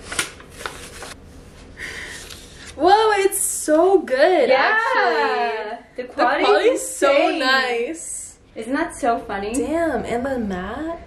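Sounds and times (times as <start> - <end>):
paper rustling and crackling: 0.0 - 1.2.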